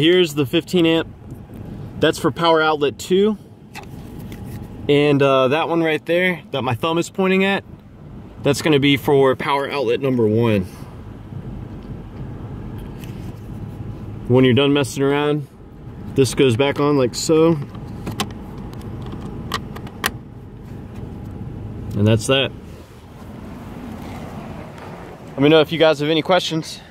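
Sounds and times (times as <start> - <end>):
low background rumble: 0.0 - 26.9.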